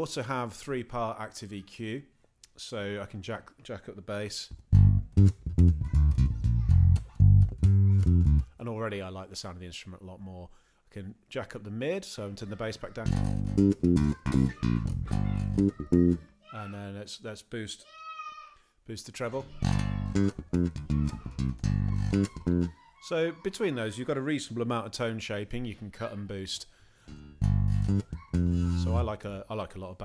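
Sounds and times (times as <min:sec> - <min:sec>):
plucked bass guitar notes: 0:04.5 - 0:08.6, 0:13.0 - 0:16.2, 0:19.6 - 0:22.7, 0:27.1 - 0:29.1.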